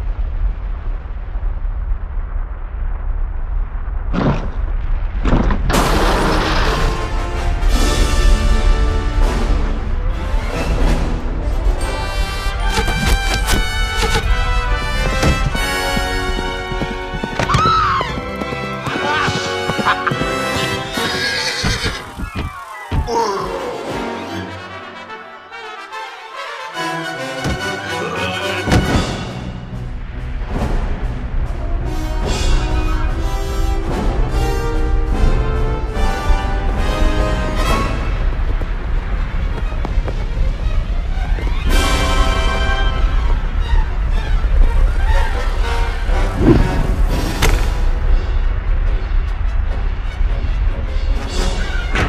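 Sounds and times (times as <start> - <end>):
deep rumble: 0.0 - 18.9, 28.8 - 52.0
sharp thuds: 4.1 - 6.5, 46.3 - 48.0
orchestral film music: 5.7 - 22.0, 22.7 - 52.0
march music: 7.2 - 21.4
horse whinnying: 18.9 - 23.1.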